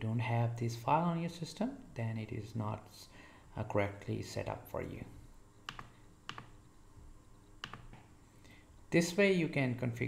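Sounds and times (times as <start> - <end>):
computer keyboard key clicks: 5.7 - 6.6, 7.6 - 8.0.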